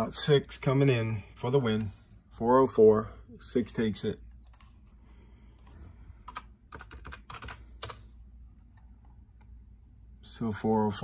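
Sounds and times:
typing on computer keyboard: 5.6 - 8.0.

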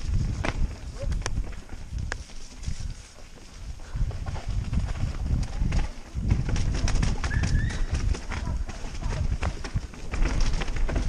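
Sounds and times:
bike rattling and knocking: 0.0 - 11.0
wind buffeting microphone: 0.0 - 11.0.

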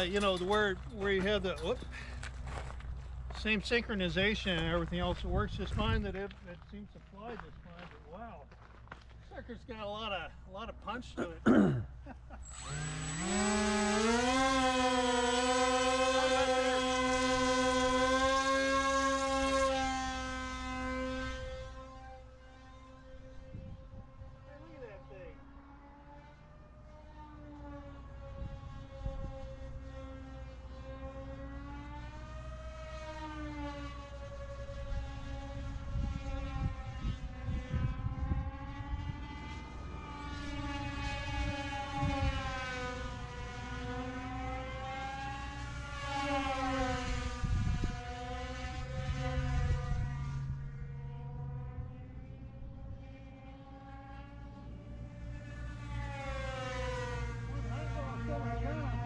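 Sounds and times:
model plane motors whining: 12.2 - 59.0.

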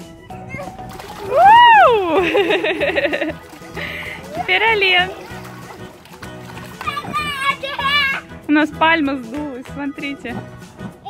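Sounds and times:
background music: 0.0 - 11.0
child splashing into pool: 0.8 - 8.0
person whooping: 1.2 - 2.3.

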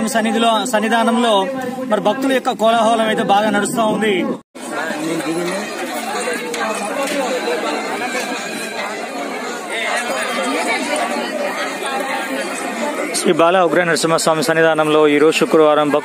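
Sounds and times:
crowd talking: 0.0 - 16.0.

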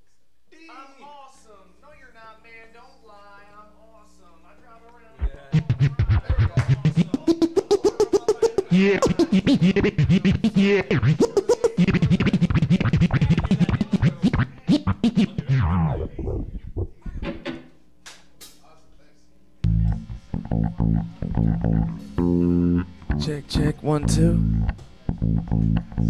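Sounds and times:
bass guitar low notes: 5.2 - 7.5, 8.7 - 11.2, 11.8 - 17.4, 19.6 - 26.0
electric guitar held notes: 5.2 - 7.6, 8.6 - 17.3, 19.6 - 26.0
beatboxing into a microphone: 5.2 - 17.4, 19.7 - 26.0.

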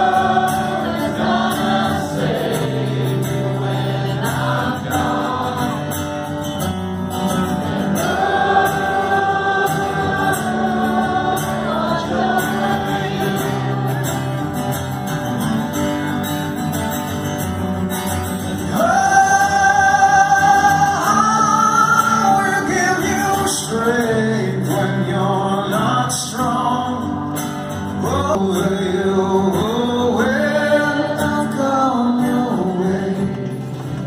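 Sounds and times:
guitar: 0.0 - 34.0.

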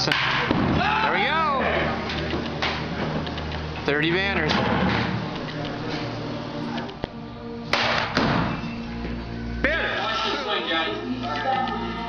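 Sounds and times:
background music: 0.0 - 12.0
baseball bat striking ball: 0.1 - 0.8, 7.7 - 8.6.

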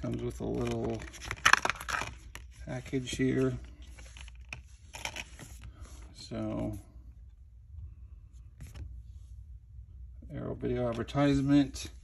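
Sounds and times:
plastic wrapping crackling: 0.0 - 2.4.

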